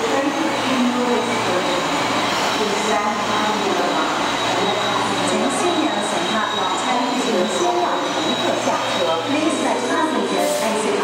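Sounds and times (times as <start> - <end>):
electric train humming: 0.0 - 11.0
train squeals gliding in pitch: 1.0 - 10.8.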